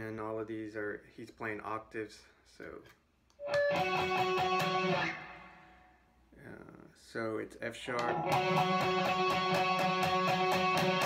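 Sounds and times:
electric guitar picked octaves: 3.4 - 5.6, 8.0 - 11.0.

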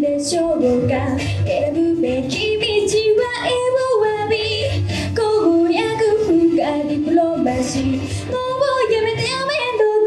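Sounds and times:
backing track music: 0.0 - 10.0
girl singing pop song: 0.0 - 10.0.

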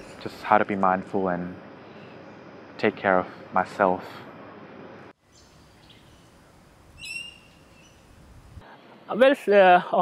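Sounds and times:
faint outdoor ambience: 0.0 - 10.0
short high bird call: 7.0 - 8.0.

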